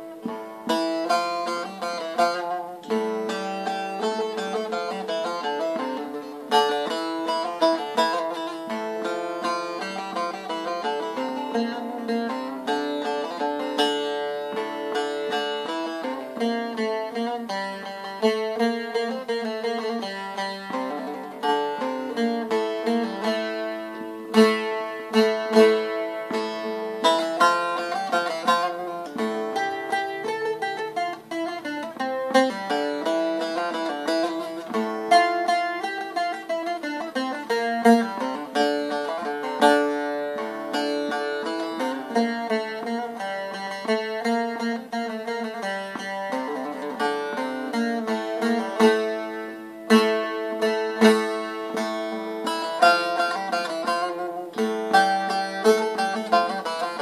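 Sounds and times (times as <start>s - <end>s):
plucked long-necked lute melody: 0.0s - 57.0s.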